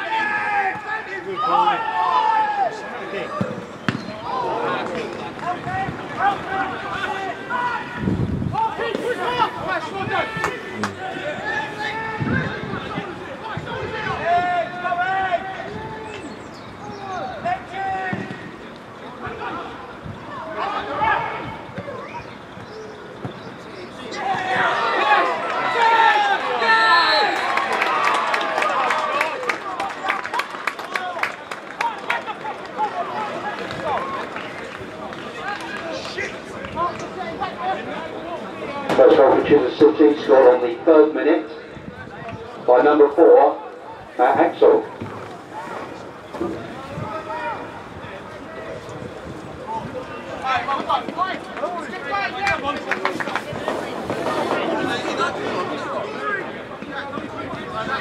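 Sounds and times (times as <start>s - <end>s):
players shouting: 0.0s - 22.3s, 23.0s - 41.8s, 42.5s - 48.9s, 49.6s - 58.0s
crowd cheering: 0.0s - 41.1s, 42.1s - 58.0s
ball kick thuds: 3.4s - 4.1s
clapping: 27.3s - 32.9s, 52.4s - 53.5s.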